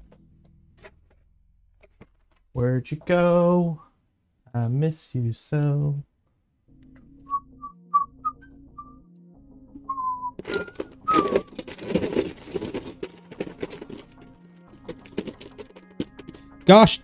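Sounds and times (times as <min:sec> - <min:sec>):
rustling and clattering: 0:00.0 - 0:02.6, 0:10.4 - 0:16.7
quiet background music: 0:06.6 - 0:17.0
man whistling: 0:07.3 - 0:09.0, 0:09.9 - 0:11.5.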